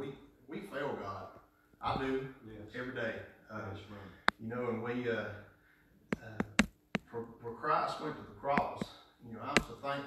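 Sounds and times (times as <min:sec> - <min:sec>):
sharp taps: 0:06.1 - 0:07.1, 0:08.5 - 0:09.8.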